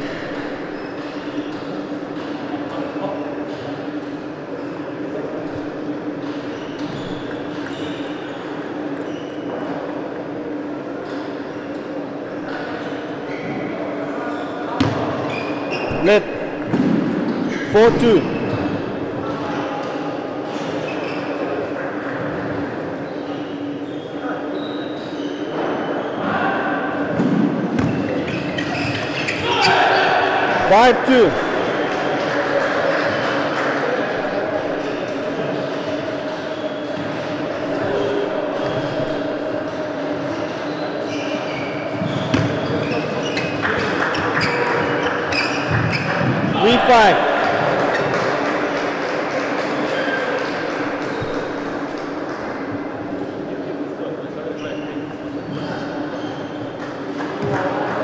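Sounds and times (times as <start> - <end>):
voices: 29.4 - 43.0, 46.4 - 48.8.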